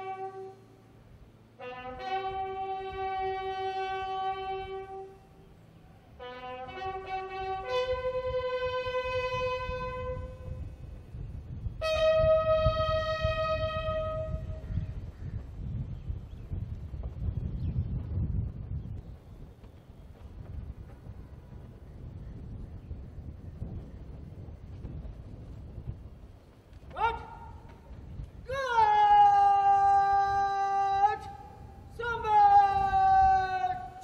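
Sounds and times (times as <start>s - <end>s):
bugle held note: 0.0s - 0.8s, 1.6s - 5.4s, 6.2s - 10.6s, 11.8s - 14.6s
wind rumble on microphone: 0.0s - 34.0s.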